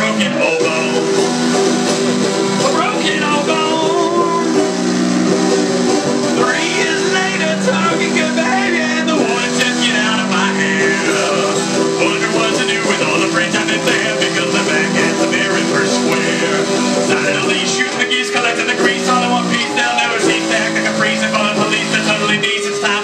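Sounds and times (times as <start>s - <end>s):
banjo playing: 0.0s - 23.0s.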